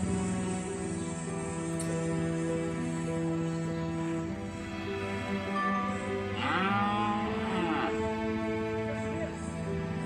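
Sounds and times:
soft slow background music: 0.0s - 10.0s.

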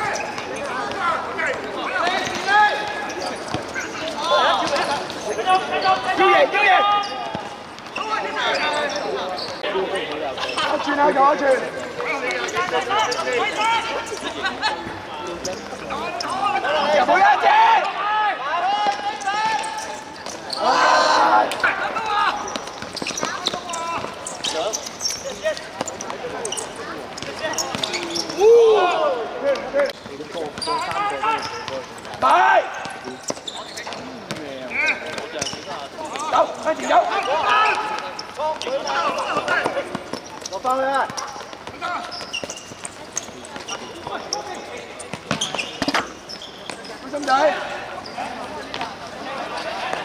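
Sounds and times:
players calling and shouting: 0.0s - 50.0s.

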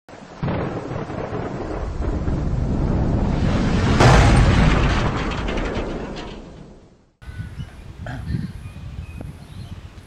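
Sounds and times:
thunder-like rumble: 0.4s - 7.0s.

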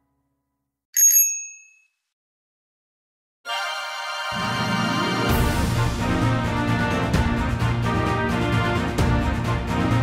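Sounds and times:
bright bell ding: 1.0s - 1.9s.

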